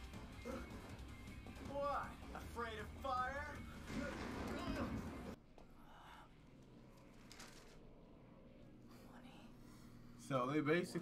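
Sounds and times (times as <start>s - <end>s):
faint low hum: 3.1s - 11.0s.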